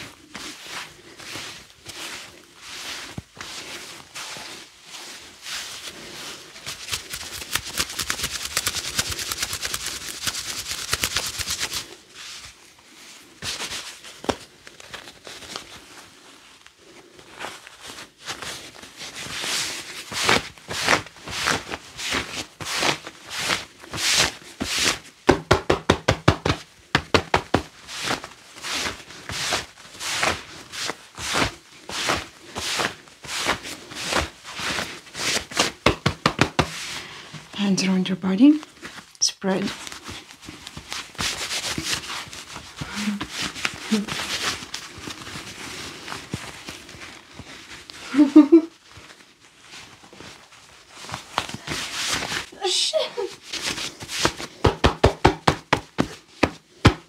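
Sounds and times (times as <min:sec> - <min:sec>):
gloved hands rubbing fabric: 0:00.0 - 0:37.1, 0:38.6 - 0:57.0.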